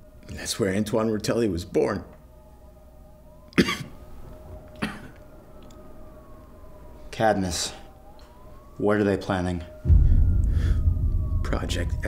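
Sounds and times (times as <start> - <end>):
distant siren wailing: 0.0 - 12.0
man coughing: 3.6 - 4.0, 4.8 - 5.2.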